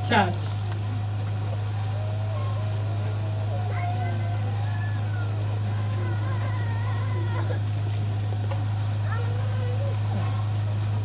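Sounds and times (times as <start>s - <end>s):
faint voices talking: 0.0s - 11.0s
loud steady low hum: 0.0s - 11.0s.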